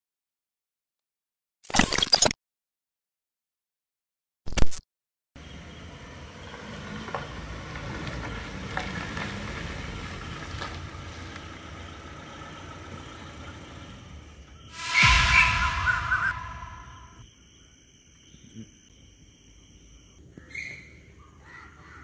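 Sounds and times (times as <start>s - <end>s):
loud burst of noise with tone: 14.7s - 17.2s.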